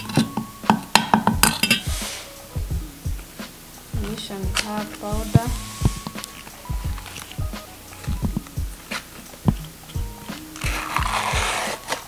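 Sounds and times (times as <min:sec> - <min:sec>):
background music with a beat: 0:00.0 - 0:12.0.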